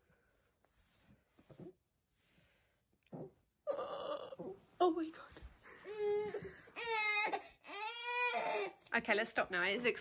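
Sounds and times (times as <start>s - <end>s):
baby crying: 5.8s - 8.8s.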